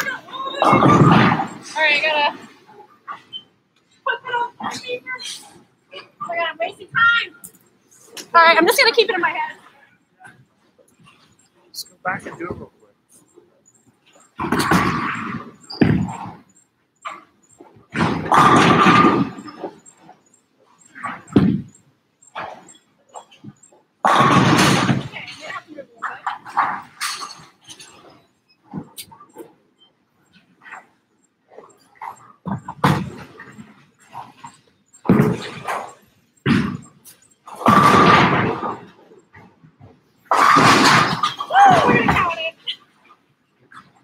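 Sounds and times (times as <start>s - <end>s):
bowling balls striking pins: 0.0s - 2.6s, 14.3s - 19.9s, 21.0s - 21.8s, 22.4s - 28.1s, 32.0s - 39.5s, 40.3s - 42.5s
indistinct voices: 0.0s - 16.3s, 20.8s - 29.4s, 40.3s - 42.8s.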